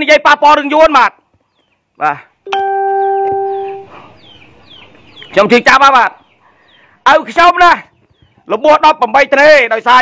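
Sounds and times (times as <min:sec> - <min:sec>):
faint bird chirps: 0:02.9 - 0:05.6.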